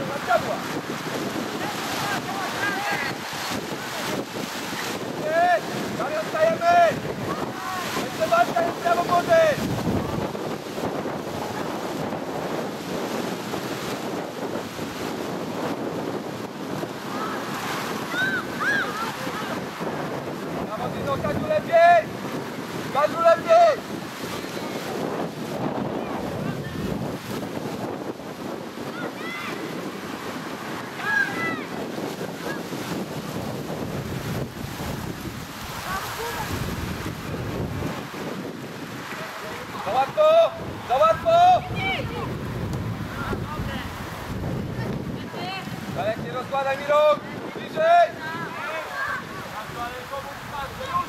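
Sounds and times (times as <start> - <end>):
wind buffeting microphone: 0.0 - 51.0
shouted calls: 18.1 - 19.6.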